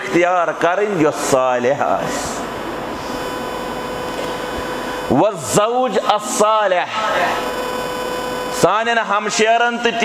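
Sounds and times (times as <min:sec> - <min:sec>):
electrical hum and hiss: 0:00.0 - 0:08.7
faint steady mid-pitched tone: 0:01.1 - 0:05.2
short breathy hiss: 0:01.8 - 0:04.3.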